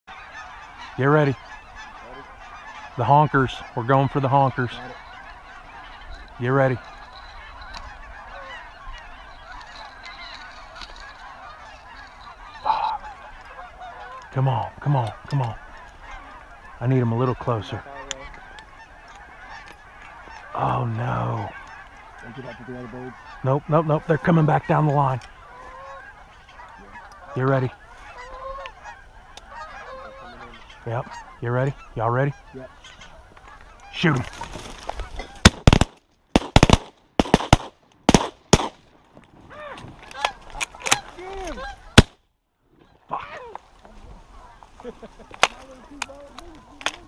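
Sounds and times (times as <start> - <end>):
geese honking: 0.1 - 47.0.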